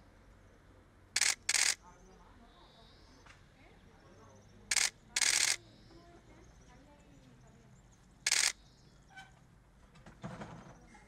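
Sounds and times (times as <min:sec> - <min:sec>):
faint voices: 0:01.2 - 0:08.6.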